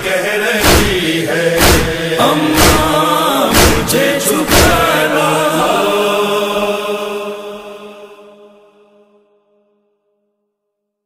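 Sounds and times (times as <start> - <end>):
voices chanting a held note: 0.0 - 9.4.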